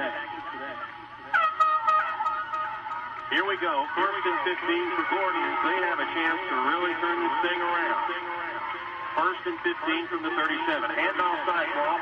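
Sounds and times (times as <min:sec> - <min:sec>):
murmur of voices: 0:02.7 - 0:12.0.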